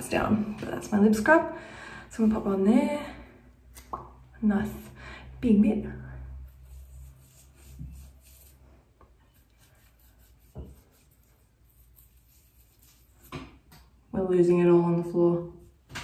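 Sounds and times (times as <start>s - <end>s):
fingertip rubbing lip scrub: 9.3s - 13.3s.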